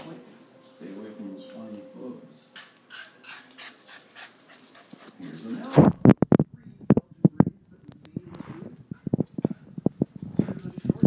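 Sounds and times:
dog panting: 2.5s - 5.7s.

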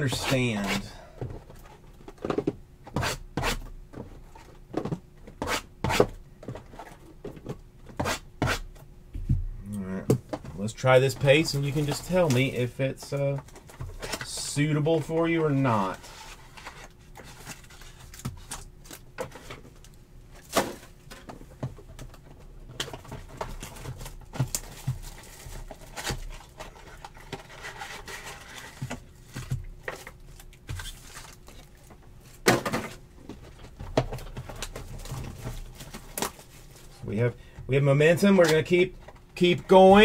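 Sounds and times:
faint steady hum: 0.0s - 40.0s.

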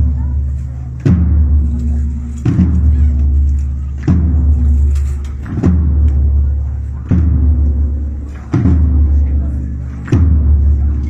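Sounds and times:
large low drum beats: 0.0s - 11.0s.

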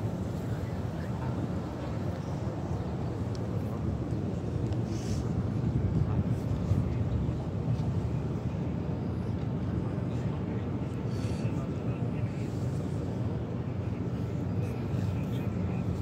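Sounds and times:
low crowd rumble: 0.0s - 16.0s.

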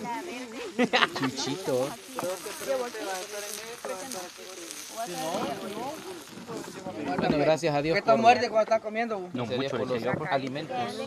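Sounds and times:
meat frying on a griddle: 0.0s - 11.0s
voices talking: 0.0s - 11.0s.

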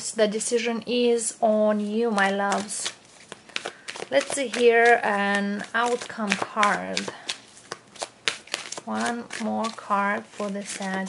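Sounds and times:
cards being shuffled: 2.0s - 11.0s.

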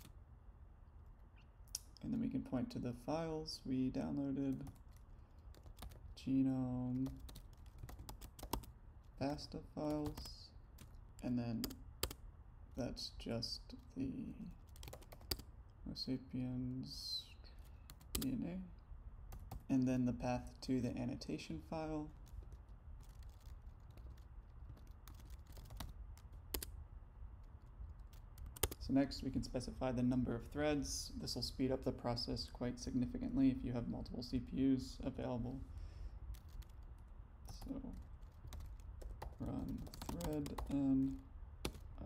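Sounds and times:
faint low hum: 0.0s - 42.0s
computer keyboard keys clicking: 4.5s - 6.0s, 6.9s - 8.7s, 11.6s - 12.2s, 14.6s - 15.4s, 22.2s - 26.7s, 27.9s - 28.8s, 36.3s - 36.9s, 37.5s - 41.9s.

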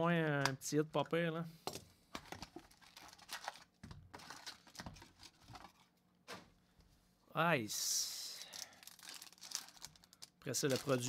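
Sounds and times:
trading cards rustling and clicking: 8.9s - 11.0s.

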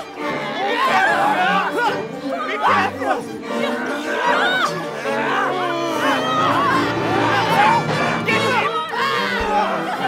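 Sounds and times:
voices yelling and whooping: 0.4s - 10.0s
orchestra holding low notes: 1.1s - 10.0s.

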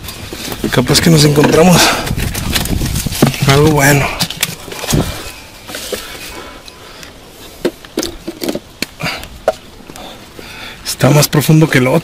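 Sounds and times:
knocks and scrapes on rock: 0.1s - 6.4s
camera brushing against stone: 2.1s - 6.4s.

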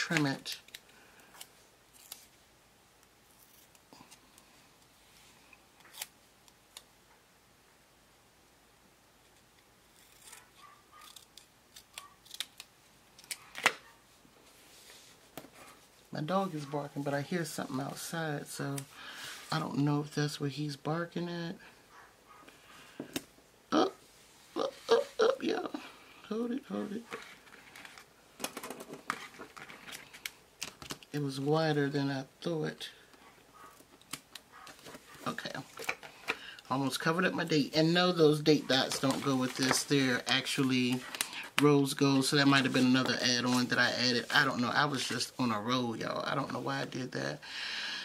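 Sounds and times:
scissors snipping paper: 9.9s - 13.7s
paper handling: 27.0s - 31.2s, 38.3s - 45.3s.

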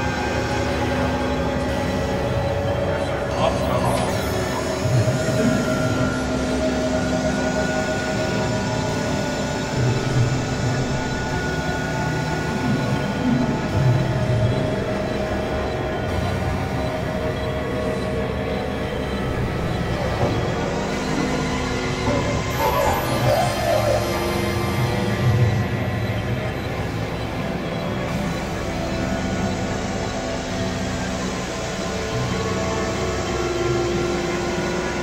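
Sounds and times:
sustained synthesizer tones: 0.0s - 35.0s.

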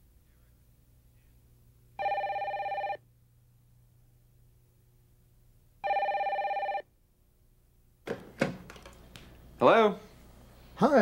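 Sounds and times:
telephone ringing: 2.0s - 3.0s, 5.8s - 6.9s.

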